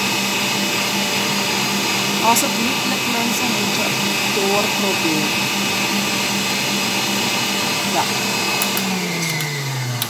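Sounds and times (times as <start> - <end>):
electric stand mixer whisking: 0.0 - 10.0.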